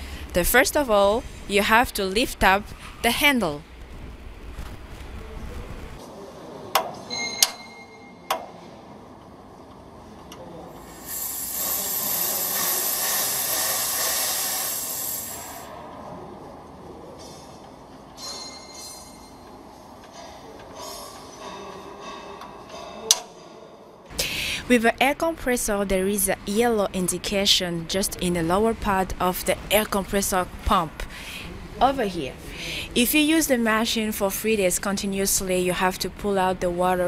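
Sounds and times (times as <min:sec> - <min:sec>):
compressed air hissing: 0:10.8 - 0:15.8.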